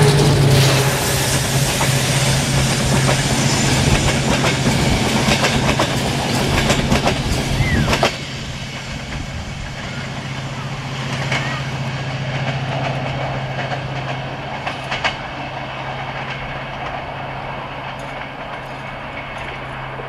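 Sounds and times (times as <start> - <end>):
distant train rumble: 0.0 - 20.0
train low drone: 0.0 - 20.0
train wheels clicking over rail joints: 0.0 - 20.0.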